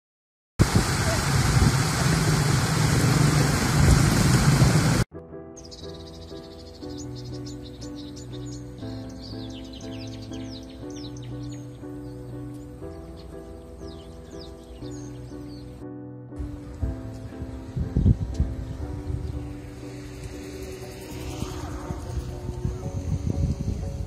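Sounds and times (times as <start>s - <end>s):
water rushing over stones: 0.6s - 5.1s
background music of sustained chords: 5.1s - 24.0s
birds chirping: 5.5s - 24.0s.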